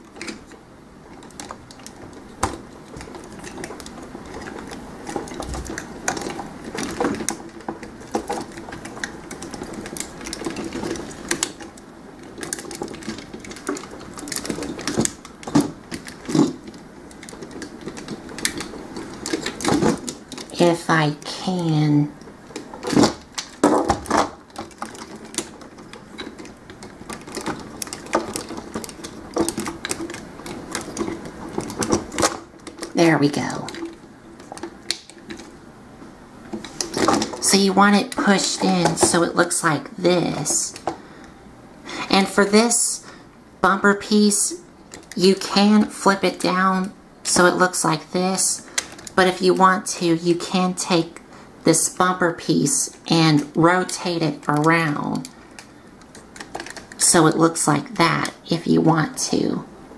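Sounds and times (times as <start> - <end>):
toy parts clicking and snapping: 0.0 - 35.6, 44.8 - 50.2, 52.8 - 57.4.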